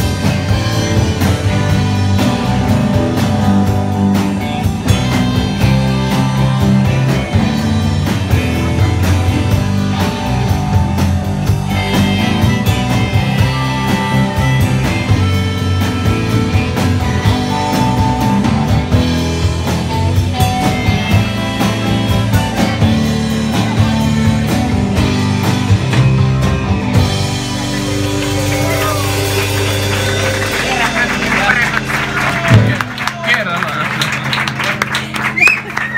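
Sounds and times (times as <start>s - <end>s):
bass guitar: 0.0s - 35.9s
electric guitar lines: 0.0s - 35.9s
steady drum beat: 0.0s - 35.9s.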